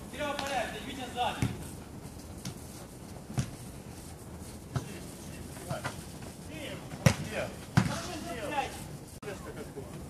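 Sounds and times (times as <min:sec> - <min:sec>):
football kick thumps: 0:01.3 - 0:01.6, 0:06.9 - 0:08.1.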